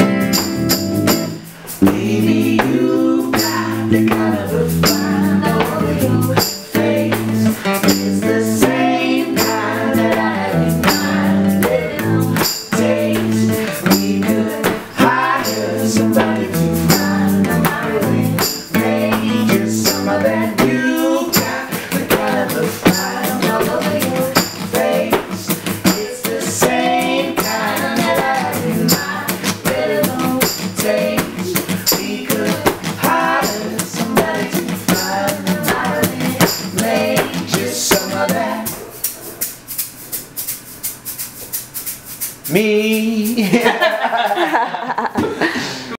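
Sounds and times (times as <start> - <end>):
shaker rhythm: 0.0 - 45.8
acoustic guitar: 0.0 - 45.9
voices singing in harmony: 1.2 - 39.0.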